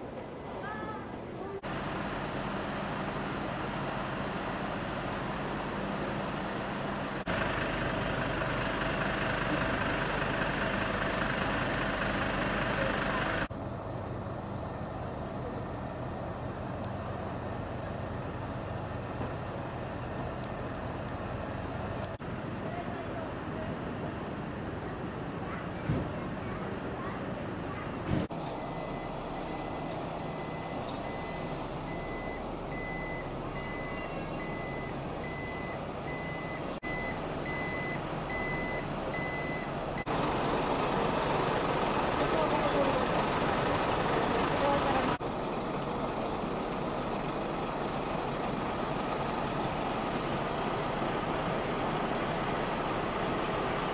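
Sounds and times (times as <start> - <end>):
diesel engine idling: 0.0 - 22.6, 27.4 - 53.9
electronic warning beeper: 28.6 - 39.7.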